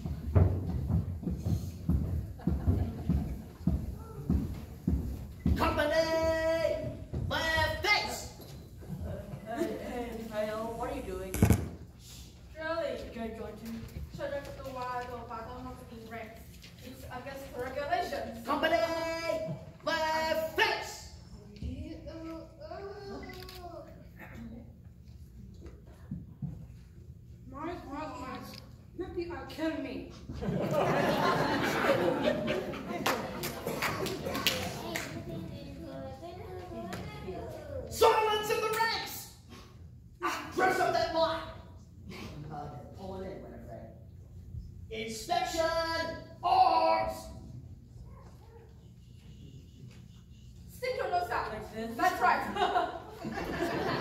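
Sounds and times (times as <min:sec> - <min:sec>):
loud thump: 0:11.3 - 0:11.9
children's voices: 0:32.9 - 0:37.9.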